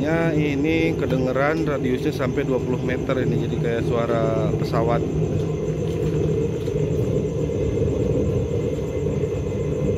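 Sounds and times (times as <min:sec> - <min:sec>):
oil burner heater roaring: 0:00.0 - 0:09.9.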